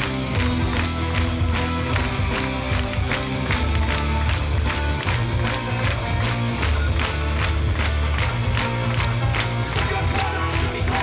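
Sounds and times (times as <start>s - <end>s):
audience clapping along: 0.0s - 11.0s
live band music: 0.0s - 11.0s.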